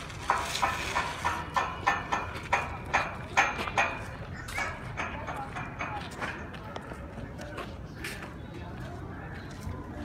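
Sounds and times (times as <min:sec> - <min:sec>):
footsteps on stone paving: 0:00.0 - 0:10.0.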